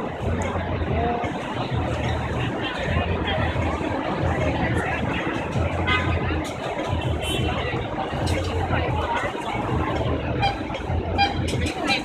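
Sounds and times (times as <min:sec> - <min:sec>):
pedestrians chattering: 0:00.0 - 0:12.0
traffic rumble: 0:00.0 - 0:12.0.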